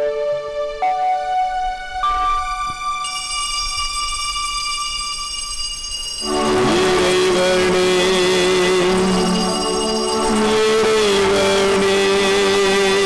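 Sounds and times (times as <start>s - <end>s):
organ-like held chords: 6.2s - 13.0s.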